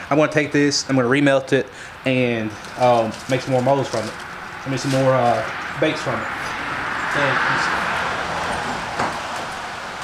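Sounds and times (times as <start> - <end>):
road vehicle passing: 1.8 - 10.0.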